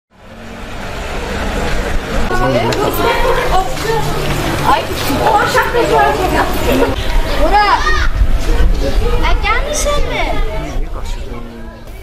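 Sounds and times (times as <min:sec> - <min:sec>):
outdoor street noise: 0:00.1 - 0:12.0.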